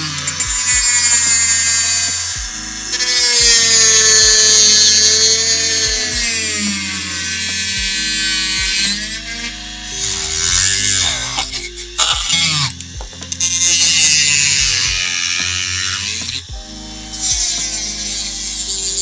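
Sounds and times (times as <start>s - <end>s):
rotary tool cutting plastic: 0.0s - 16.5s, 17.1s - 19.0s
background music with bass line: 0.0s - 19.0s.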